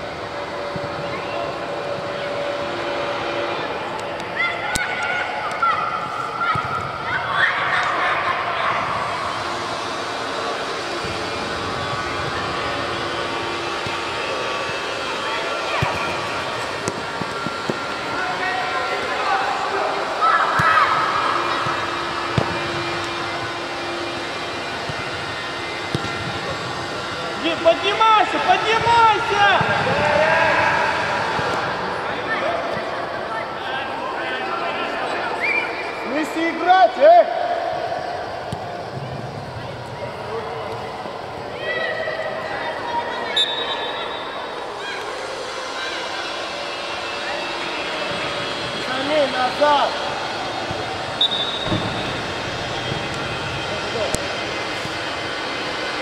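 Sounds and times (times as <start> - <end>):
hubbub of voices: 0.0 - 56.0
people shouting in echoing hall: 4.3 - 11.7, 17.5 - 25.9, 27.0 - 38.6.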